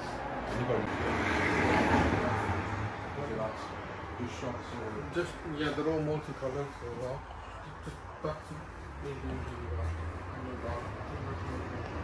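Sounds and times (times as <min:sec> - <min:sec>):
vehicle passing: 0:00.0 - 0:12.0.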